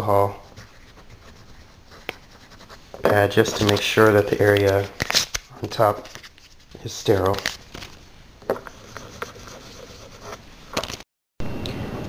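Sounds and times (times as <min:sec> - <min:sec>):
faint room noise: 0:00.0 - 0:11.0.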